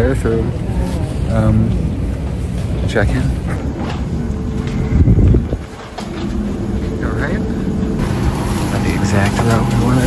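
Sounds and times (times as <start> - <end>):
faint machine hum: 0.0 - 10.0
jet bridge rumbling: 1.8 - 10.0.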